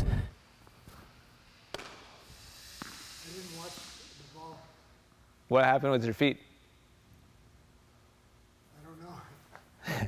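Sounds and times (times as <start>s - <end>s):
tennis racket hitting ball: 1.7s - 2.1s, 2.8s - 3.0s.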